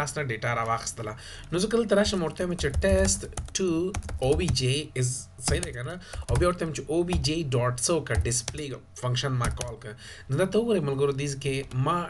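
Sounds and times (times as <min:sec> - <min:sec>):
keyboard key clicks: 0:09.4 - 0:09.8.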